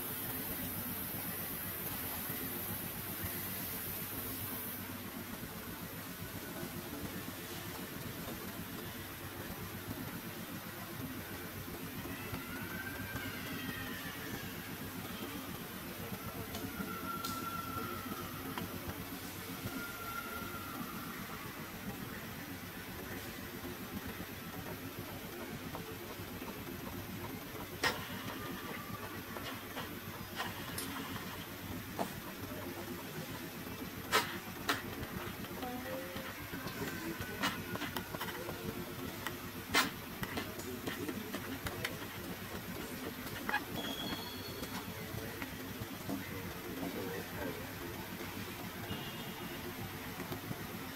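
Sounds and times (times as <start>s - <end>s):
faint gliding high calls: 12.0s - 22.1s.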